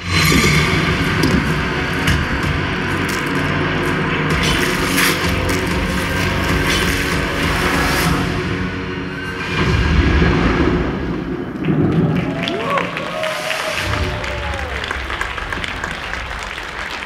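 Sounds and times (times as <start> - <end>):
horror soundtrack over speakers: 0.0 - 17.0
clicks and crackles: 0.3 - 7.2.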